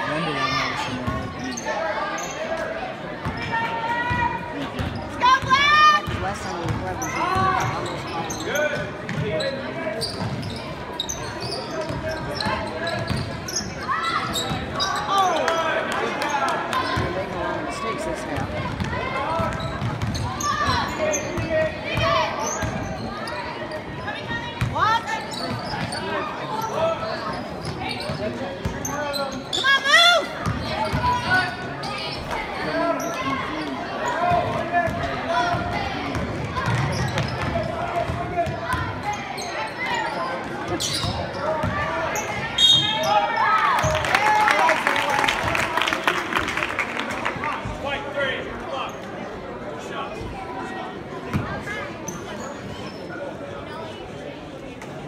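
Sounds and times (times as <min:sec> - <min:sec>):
sneakers squeaking: 0:00.8 - 0:15.5, 0:18.4 - 0:44.0, 0:51.3 - 0:54.0
basketball bouncing: 0:18.4 - 0:20.2
people calling out in a hall: 0:29.0 - 0:49.7.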